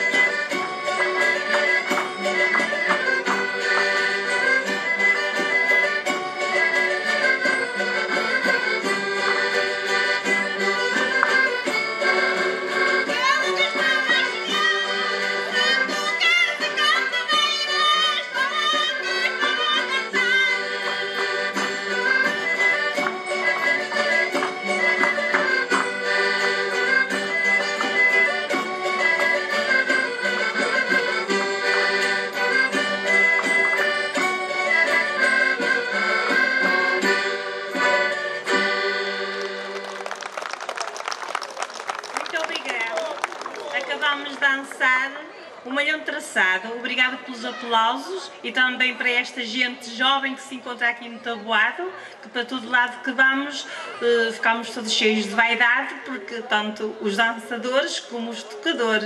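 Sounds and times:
folk band playing dance tune: 0.0s - 45.6s
accordion: 0.0s - 59.0s.

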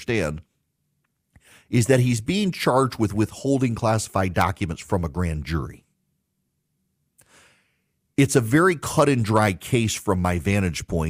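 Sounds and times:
man's soft intake of breath: 1.3s - 1.7s, 7.2s - 8.0s.

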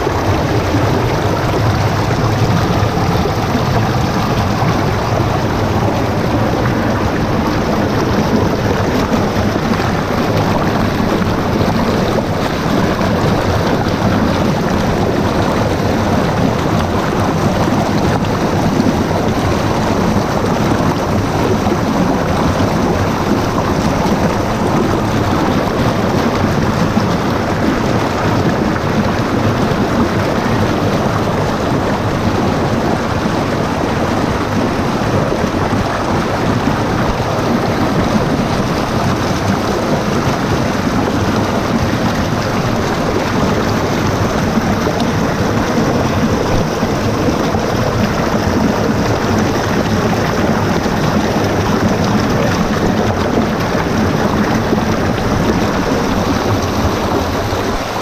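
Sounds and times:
stream rushing over boulders: 0.0s - 58.0s.

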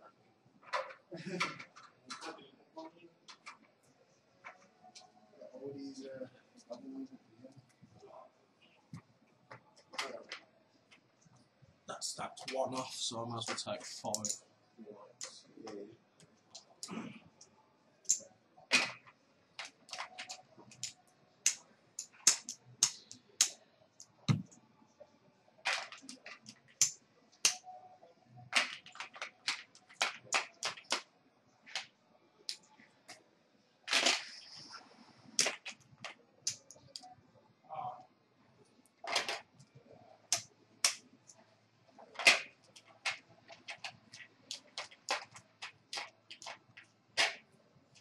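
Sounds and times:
poker chips clacking: 18.1s - 23.5s, 25.7s - 27.6s, 28.5s - 31.0s, 42.2s - 47.4s.

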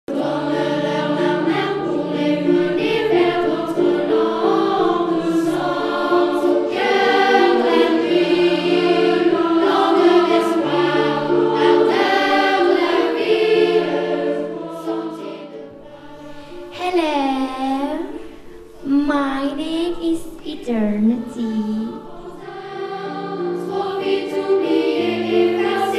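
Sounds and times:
choir singing held chords: 0.1s - 18.9s, 19.6s - 25.9s.

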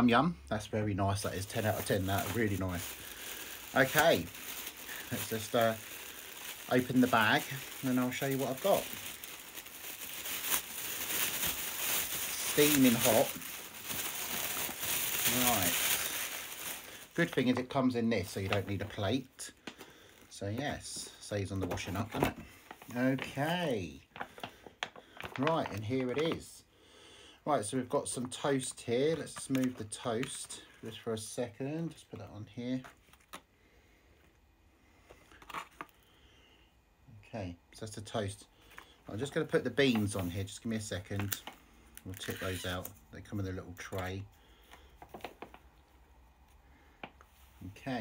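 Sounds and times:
bag crackle: 1.2s - 17.6s
food bag rustling and crinkling: 1.2s - 19.2s, 21.6s - 26.5s, 38.7s - 45.6s.

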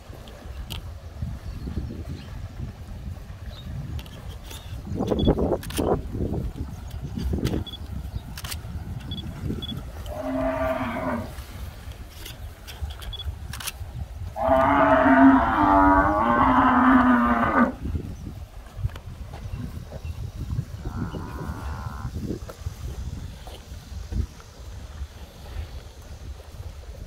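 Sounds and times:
cattle mooing: 10.1s - 11.3s, 14.4s - 17.8s, 20.9s - 22.1s.

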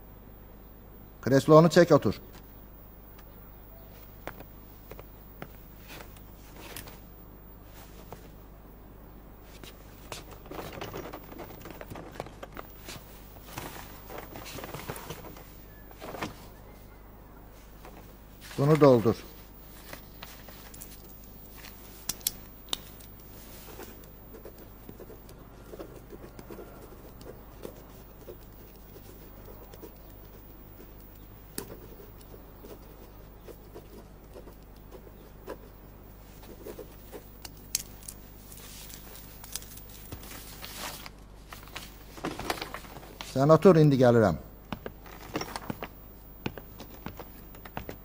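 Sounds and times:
low steady hum: 0.0s - 48.0s
pen scratching on paper: 23.6s - 37.3s.

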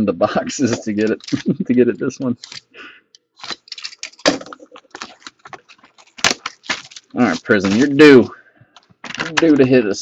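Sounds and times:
plastic wrap crinkling and tearing: 0.6s - 2.7s, 3.4s - 8.2s, 8.8s - 9.7s.

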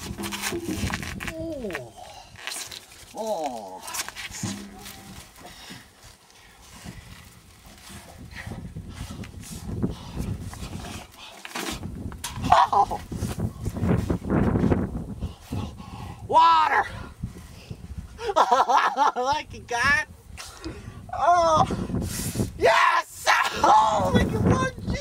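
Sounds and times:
rough rustling noise: 0.0s - 15.7s
man's wordless cries: 16.3s - 17.0s, 21.1s - 21.8s, 22.6s - 25.0s.

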